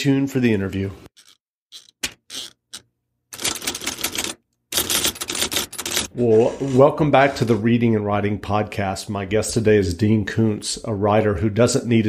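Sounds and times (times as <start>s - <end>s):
typewriter keys clacking: 3.4s - 6.1s.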